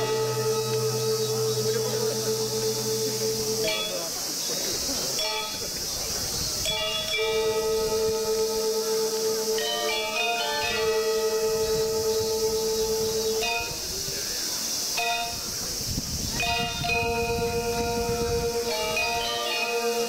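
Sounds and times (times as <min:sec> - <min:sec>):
gamelan music: 0:00.0 - 0:04.1, 0:05.2 - 0:05.7, 0:06.7 - 0:14.0, 0:15.0 - 0:15.5, 0:16.4 - 0:20.0
steady hiss: 0:00.0 - 0:20.0.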